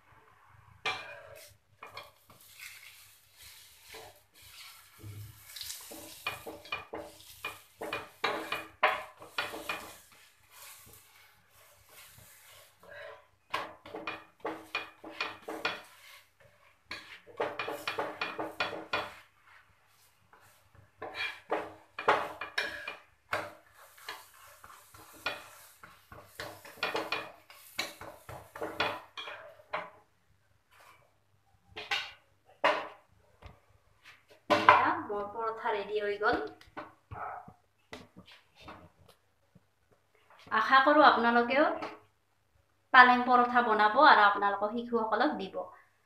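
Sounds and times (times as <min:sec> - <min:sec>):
metal spatula scraping a pan: 0:00.8 - 0:30.0, 0:30.7 - 0:31.1, 0:31.7 - 0:33.0.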